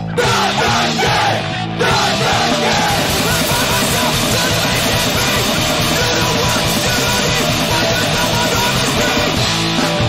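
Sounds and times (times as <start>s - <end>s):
shouted vocals: 0.0s - 9.4s
bass: 0.0s - 10.0s
distorted guitars: 0.0s - 10.0s
drums: 0.0s - 10.0s.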